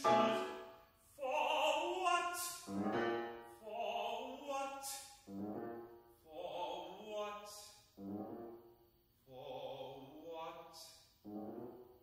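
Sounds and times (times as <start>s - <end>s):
piano chords: 0.0s - 0.8s, 2.7s - 3.6s
tenor singing: 0.0s - 8.4s, 9.2s - 11.4s.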